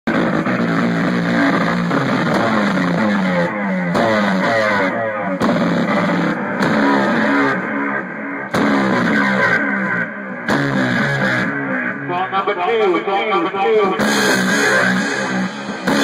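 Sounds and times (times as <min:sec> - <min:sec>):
distorted buzzing tones: 0:00.1 - 0:16.0
drum kit playing fast: 0:13.9 - 0:16.0.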